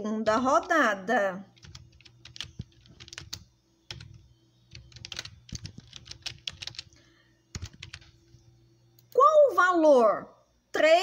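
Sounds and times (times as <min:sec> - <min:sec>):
faint steady hum: 0:00.0 - 0:11.0
computer mouse clicking: 0:01.6 - 0:08.4.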